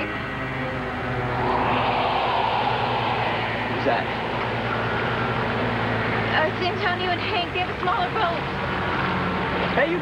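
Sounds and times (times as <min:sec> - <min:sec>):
low steady hum: 0:00.0 - 0:09.8.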